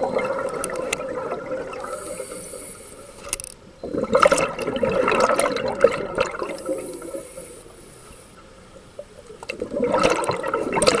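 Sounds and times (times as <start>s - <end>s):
underwater bubbles gurgling: 0.0s - 2.7s, 3.8s - 11.0s
faint hiss of breathing in: 1.8s - 3.4s, 6.6s - 8.7s.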